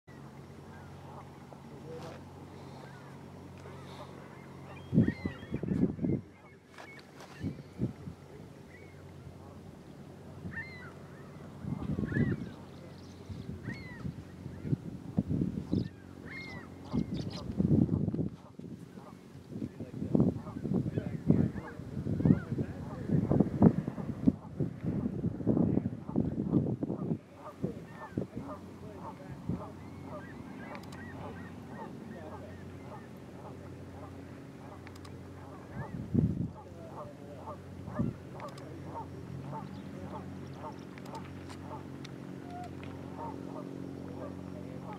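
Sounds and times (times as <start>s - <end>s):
flock of birds calling: 0.1s - 14.9s, 15.6s - 17.6s, 20.1s - 24.6s, 26.9s - 44.9s
faint low hum: 0.1s - 44.9s
geese honking: 0.7s - 5.8s, 26.9s - 36.0s, 36.6s - 44.9s.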